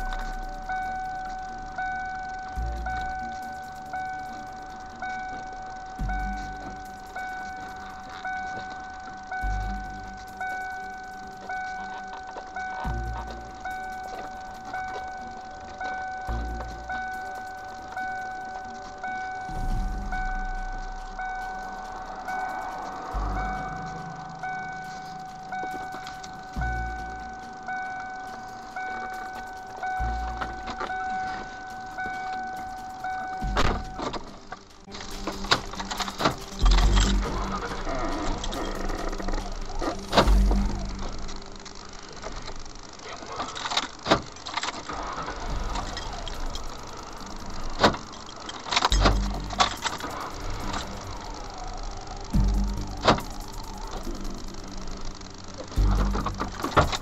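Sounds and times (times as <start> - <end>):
car warning chime dinging: 0.0 - 57.0.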